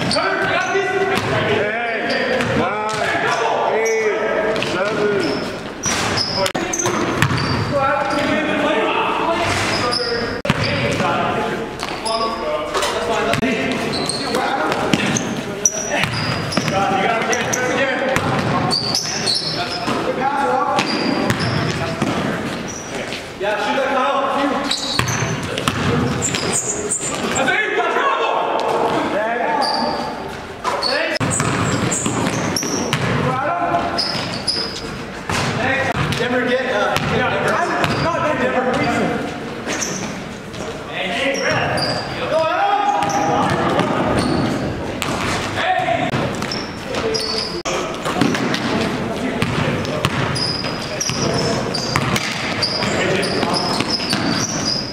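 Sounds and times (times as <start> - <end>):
sneakers squeaking: 0.0 - 27.6, 28.5 - 54.9
basketball bouncing on floor: 6.8 - 7.6, 10.5 - 11.1, 25.0 - 26.5, 31.2 - 33.2, 35.3 - 36.2, 37.0 - 37.2, 49.4 - 50.4, 52.0 - 54.5.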